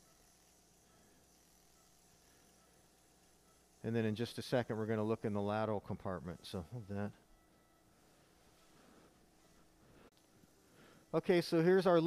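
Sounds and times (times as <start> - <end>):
man speaking: 3.8 - 7.3, 11.1 - 12.0.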